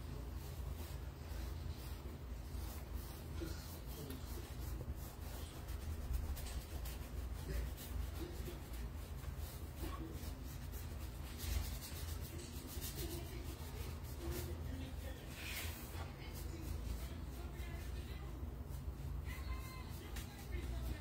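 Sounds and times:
paintbrush scratching on canvas: 0.0 - 21.0.

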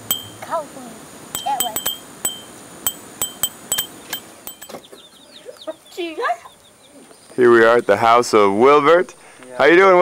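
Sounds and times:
bicycle bell ringing: 0.0 - 0.4, 1.4 - 4.7
hen clucking: 1.4 - 8.2
chicks peeping: 3.0 - 8.5.

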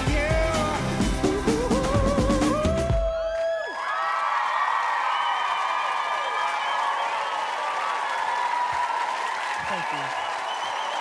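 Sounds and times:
audience cheering and applauding: 1.5 - 11.0.

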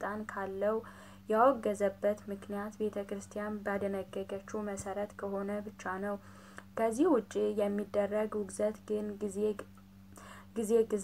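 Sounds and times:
person talking: 0.0 - 9.6, 10.5 - 11.0
low steady hum: 0.0 - 11.0
faint breath: 0.8 - 1.3, 6.2 - 6.7, 10.1 - 10.6.

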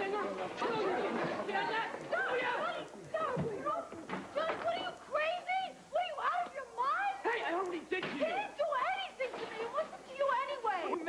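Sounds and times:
young people talking over one another: 0.0 - 11.0.

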